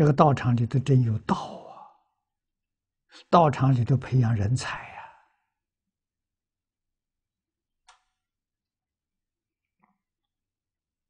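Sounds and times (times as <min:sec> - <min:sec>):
man speaking: 0:00.0 - 0:02.0, 0:03.2 - 0:05.2.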